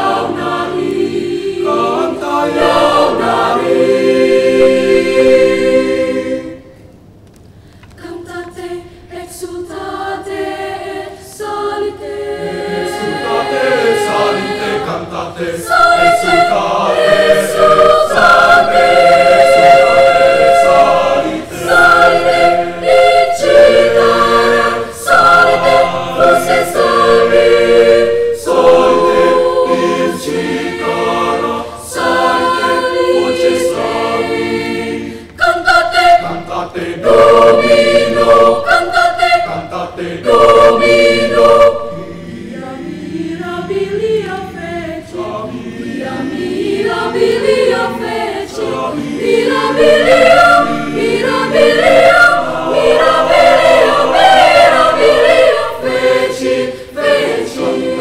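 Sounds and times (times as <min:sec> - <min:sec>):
children's choir singing a cappella: 0:00.0 - 0:06.9, 0:08.0 - 0:58.0.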